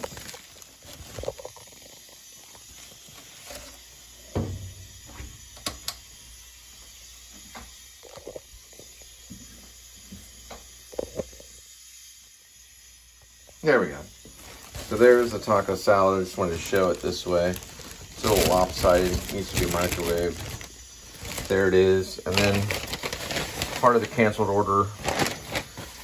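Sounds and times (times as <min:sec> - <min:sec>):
plastic bag crinkling: 0:00.0 - 0:03.9, 0:13.6 - 0:26.0
handling noises: 0:16.4 - 0:21.7.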